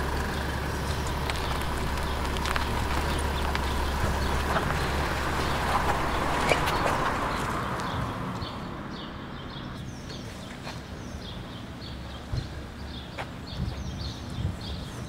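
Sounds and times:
car engine running: 0:00.0 - 0:10.1.

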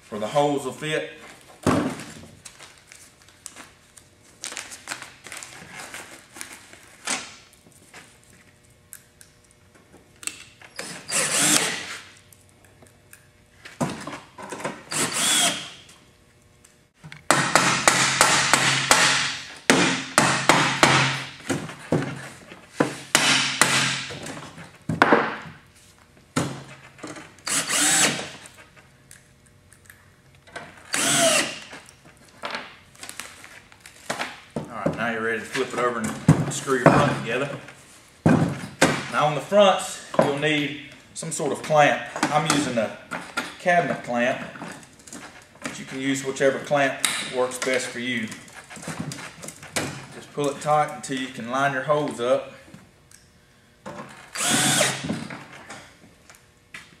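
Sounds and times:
cordless drill driving screws: 0:10.8 - 0:11.9, 0:14.9 - 0:15.8, 0:27.4 - 0:28.3, 0:30.9 - 0:31.7, 0:54.3 - 0:55.1.

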